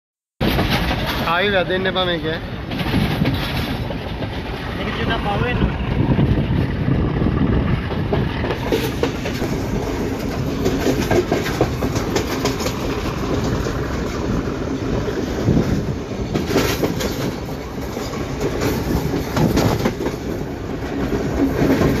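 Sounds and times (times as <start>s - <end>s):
train rumble: 0.4s - 22.0s
wheels clacking over rail joints: 0.4s - 22.0s.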